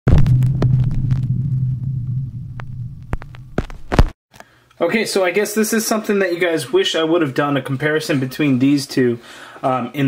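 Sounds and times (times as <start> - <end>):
low hum: 0.1 - 4.1
sharp clicks and crackles: 0.1 - 4.1.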